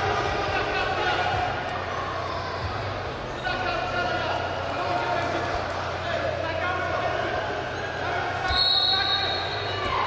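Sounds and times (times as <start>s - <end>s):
steady high whistle: 8.5s - 9.8s.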